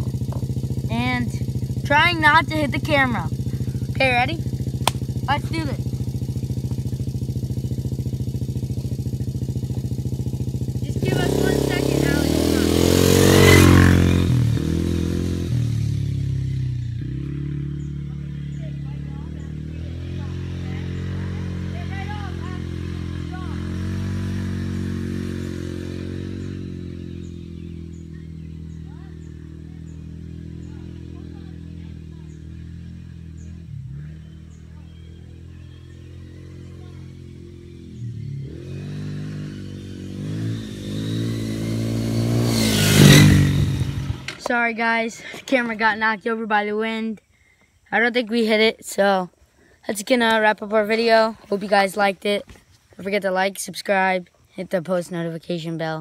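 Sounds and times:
quad engine revving: 0:00.0 - 0:47.2.

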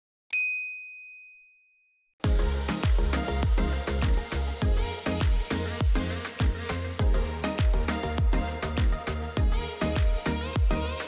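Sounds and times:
bright bell ding: 0:00.3 - 0:02.0.

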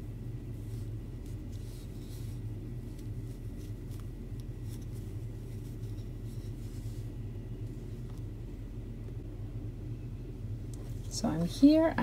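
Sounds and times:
steady low hum: 0:00.0 - 0:12.0
yarn rustling over crochet hook: 0:00.1 - 0:08.1.

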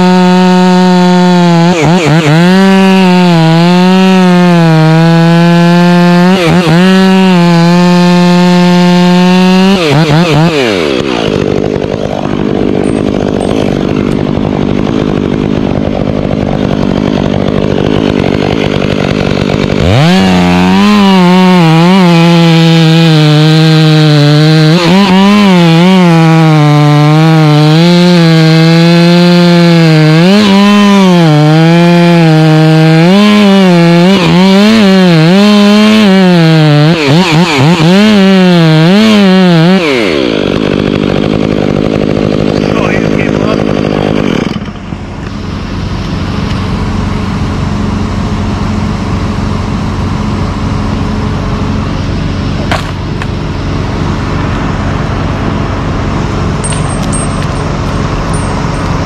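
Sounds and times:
chainsaw cutting wood: 0:00.0 - 0:59.0.

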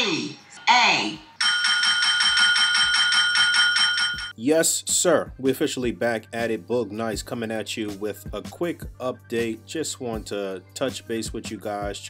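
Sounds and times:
desk call bell dinging: 0:01.4 - 0:04.4.

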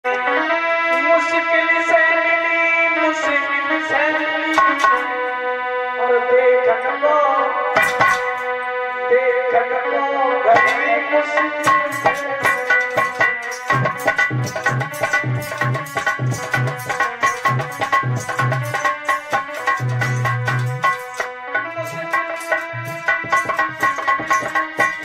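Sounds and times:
keyboard melody in held notes: 0:00.0 - 0:25.0
sharp percussion strikes: 0:04.5 - 0:05.2, 0:07.8 - 0:08.6, 0:10.6 - 0:25.0.

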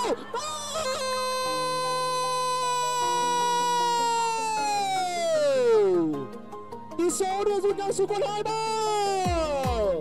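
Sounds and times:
long drawn-out goal cry: 0:00.0 - 0:04.9
background music: 0:00.0 - 0:10.0.

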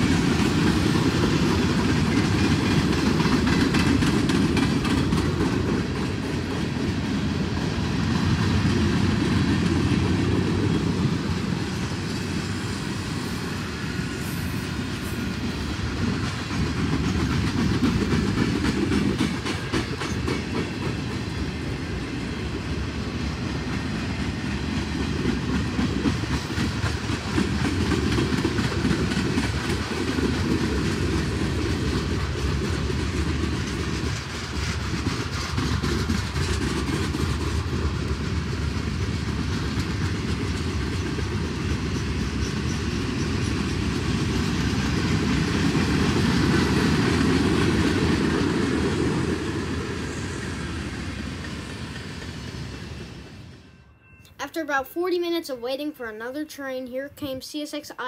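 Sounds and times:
wheels clacking over rail joints: 0:00.0 - 0:11.7, 0:15.8 - 0:21.6, 0:23.5 - 0:50.0
steel wheels rumbling on rail: 0:00.0 - 0:54.0.

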